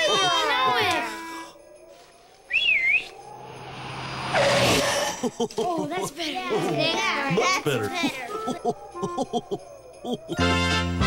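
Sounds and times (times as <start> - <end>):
wavering whistle: 2.4 - 4.9
faint rising tone: 2.5 - 5.2.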